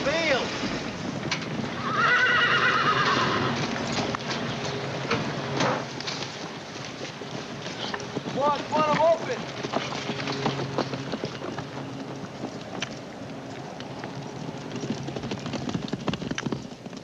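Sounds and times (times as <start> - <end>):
horse whinnying: 1.8 - 3.7.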